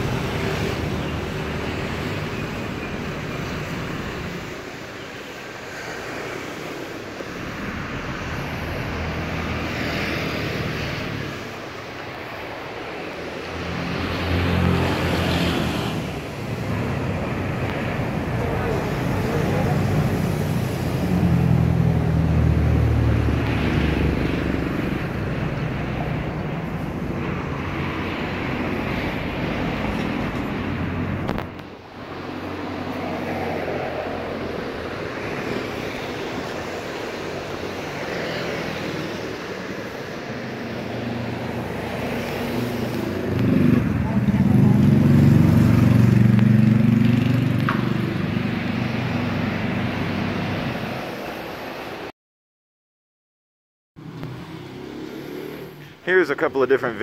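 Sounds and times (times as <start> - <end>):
vehicles driving past: 0.0 - 52.1, 54.0 - 57.0.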